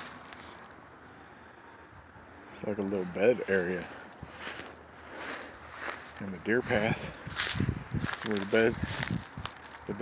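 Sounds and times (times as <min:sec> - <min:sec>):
footsteps crunching through dry grass: 0:00.0 - 0:00.9, 0:02.5 - 0:10.0.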